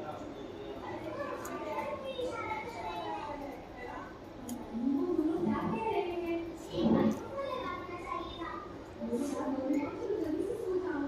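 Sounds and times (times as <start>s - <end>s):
children's voices: 0.2s - 11.0s.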